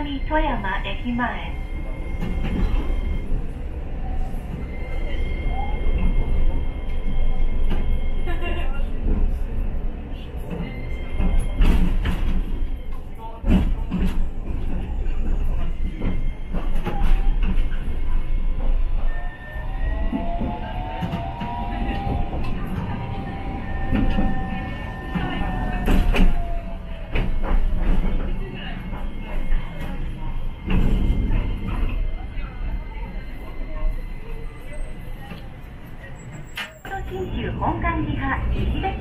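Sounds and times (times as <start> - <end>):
streetcar running gear rumble: 0.0 - 39.0
wheels clacking on track: 2.0 - 32.2.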